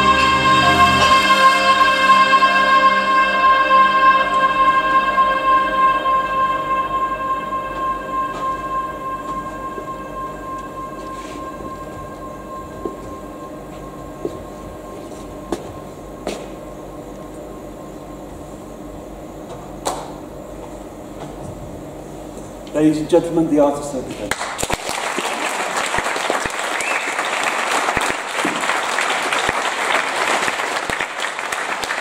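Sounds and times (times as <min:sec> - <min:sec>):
electronic drone: 0:00.0 - 0:19.1.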